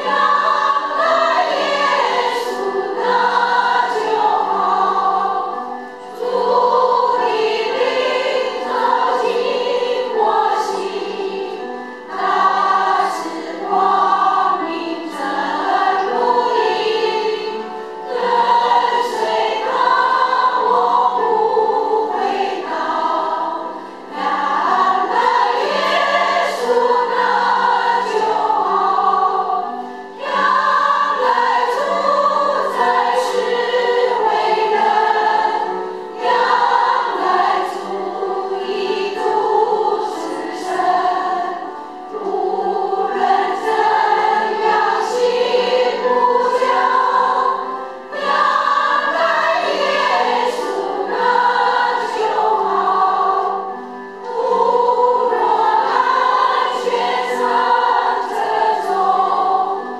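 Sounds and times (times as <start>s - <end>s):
women's choir singing a hymn: 0.0s - 59.9s.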